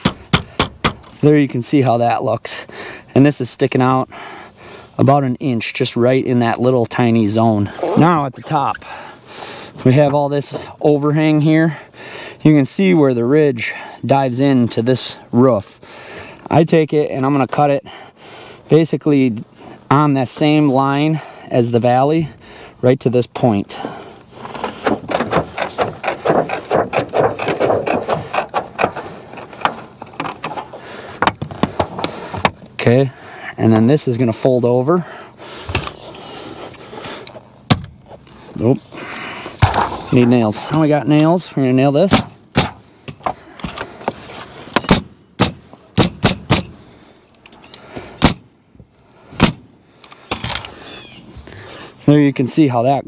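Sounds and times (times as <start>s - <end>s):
pneumatic nailer firing: 0.0s - 1.2s, 24.5s - 30.4s, 42.1s - 42.8s, 44.7s - 46.8s, 48.2s - 48.5s, 49.4s - 49.7s.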